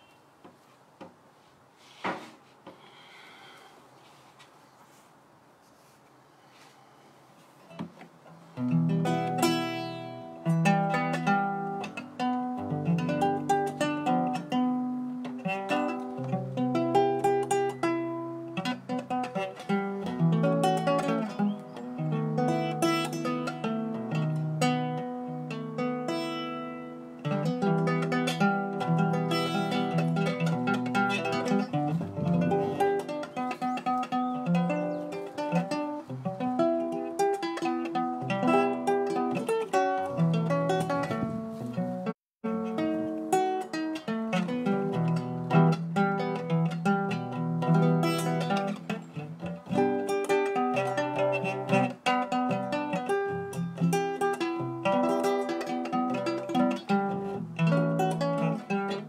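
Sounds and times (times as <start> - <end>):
plucked guitar music: 7.7 - 59.0.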